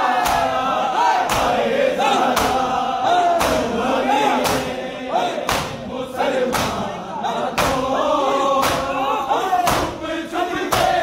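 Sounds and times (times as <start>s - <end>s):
many voices chanting: 0.0s - 11.0s
men slapping bare chests in unison: 0.0s - 11.0s.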